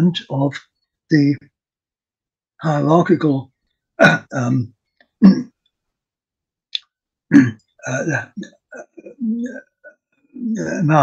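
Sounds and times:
man's throaty vocal sound: 4.0s - 4.6s, 5.2s - 5.5s, 7.3s - 11.0s
halting voice sounds: 7.3s - 11.0s.

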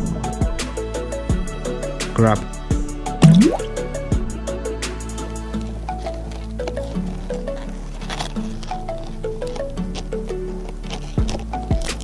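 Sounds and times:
background music: 0.0s - 12.0s
toy bloop into water: 3.2s - 3.8s.

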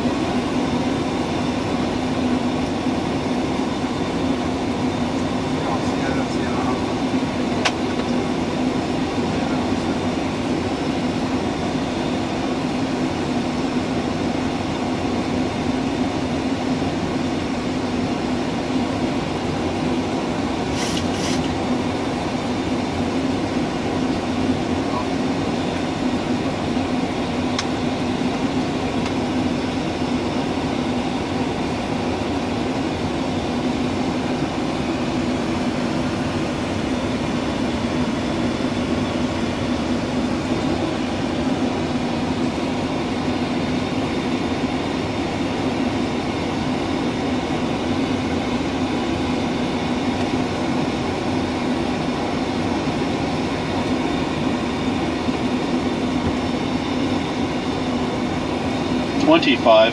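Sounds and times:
airflow and jet engines hum: 0.0s - 59.9s.

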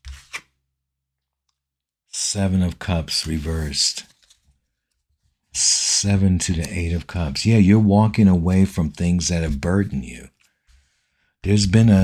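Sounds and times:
person speaking: 2.1s - 4.4s, 5.5s - 10.4s, 11.4s - 12.0s.

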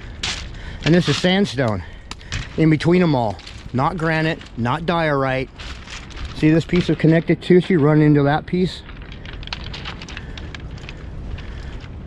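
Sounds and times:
crackling and clicks: 0.0s - 12.0s
low wind rumble: 0.0s - 12.0s.

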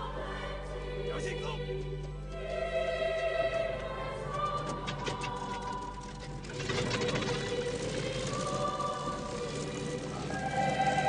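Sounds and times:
propeller plane engine clattering: 4.6s - 11.0s.

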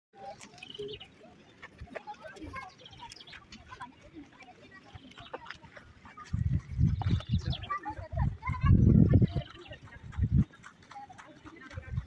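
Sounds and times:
faint voices: 0.2s - 12.0s.

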